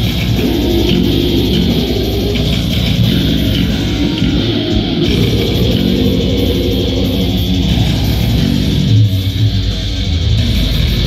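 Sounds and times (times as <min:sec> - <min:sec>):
live band playing loud: 0:00.0 - 0:11.0.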